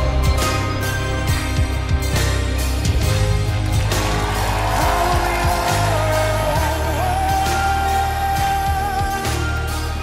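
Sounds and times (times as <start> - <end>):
piano and band pop ballad: 0.0 - 10.0.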